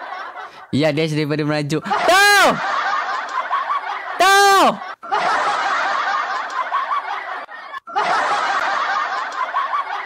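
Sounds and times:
snickering and chuckling laughter: 0.0 - 0.7, 1.9 - 10.0.

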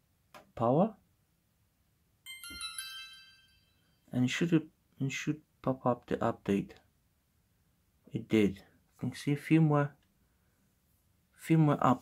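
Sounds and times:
camera power-on chime: 2.3 - 3.8.

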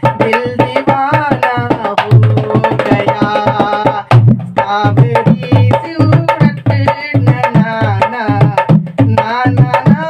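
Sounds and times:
hand drum playing: 0.0 - 10.0
man humming: 1.6 - 4.1.

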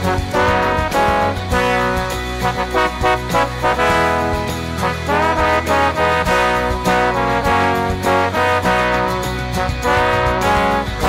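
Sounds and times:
low bass line: 0.0 - 11.0
percussion hits: 0.0 - 11.0
trombones playing in harmony: 0.0 - 11.0.

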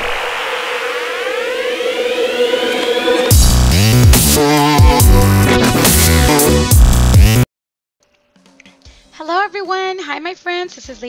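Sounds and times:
rising siren-like whine: 0.0 - 5.2
rushing noise: 0.0 - 6.4
held electronic tone: 0.6 - 5.7.

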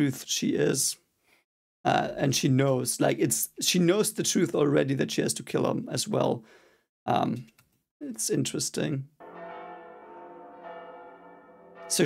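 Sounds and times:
ringing bell-like tones: 9.2 - 12.0.

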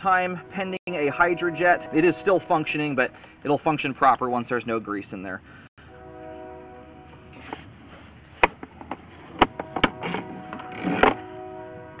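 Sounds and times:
cable clicking and scraping in pipe: 8.4 - 11.3.

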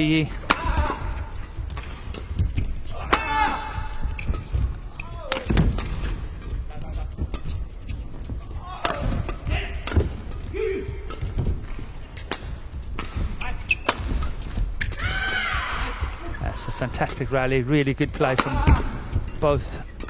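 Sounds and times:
footfalls on court floor: 0.0 - 17.4
rackets striking shuttlecock: 0.3 - 6.6, 8.8 - 15.0
shoe squeaks: 2.4 - 5.4, 13.4 - 15.0.

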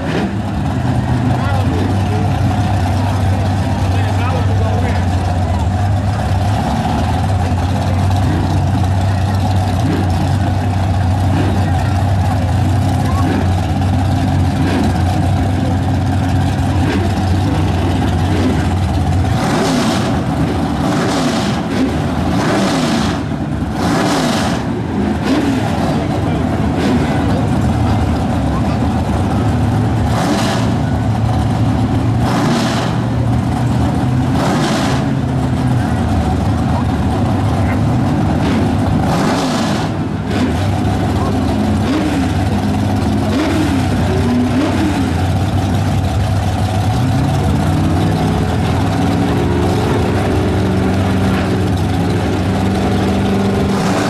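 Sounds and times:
crowd chatter: 0.0 - 54.0
engine throttle blips: 0.0 - 54.0
race cars idling loudly: 0.0 - 54.0.

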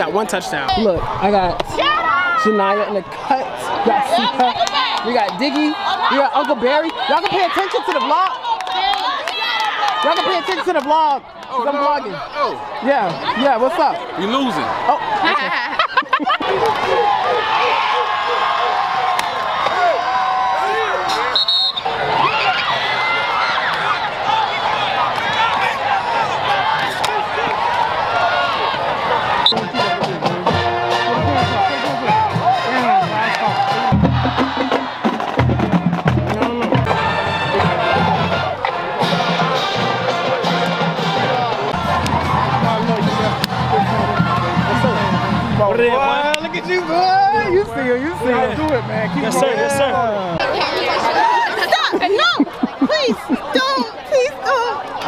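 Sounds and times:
crowd cheering: 0.0 - 55.0
music: 29.5 - 45.7.

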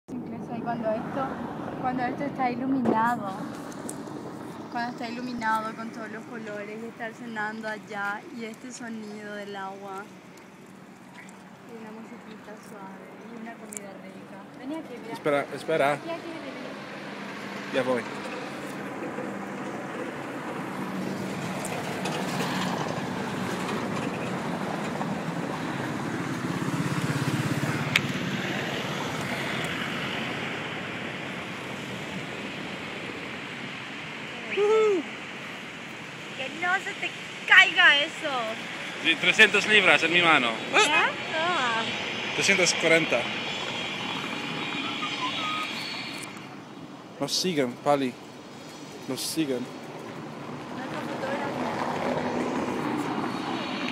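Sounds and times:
outdoor background noise: 0.1 - 53.9.

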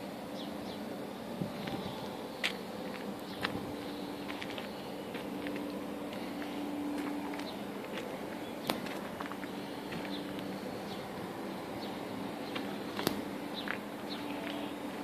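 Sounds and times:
steady low hum: 0.0 - 15.0
footsteps on gravel: 1.5 - 11.3, 12.4 - 15.0.

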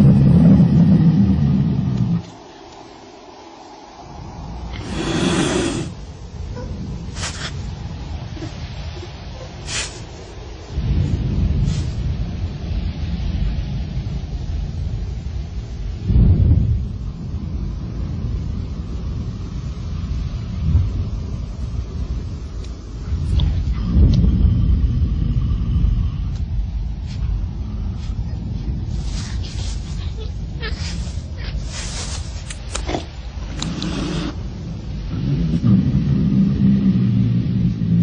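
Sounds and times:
wind rumble on microphone: 0.0 - 38.0.

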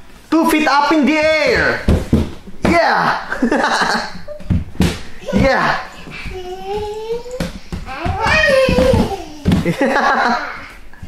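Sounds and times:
bare feet thudding on wooden floor: 1.4 - 3.0, 4.3 - 10.2.

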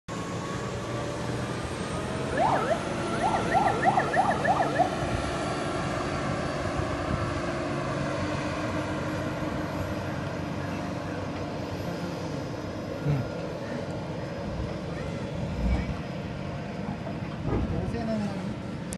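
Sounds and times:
speedboat engine drone: 0.1 - 17.4.

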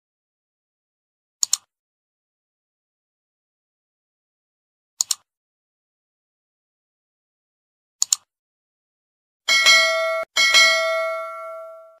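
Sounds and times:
notification bell chime: 9.5 - 12.0.

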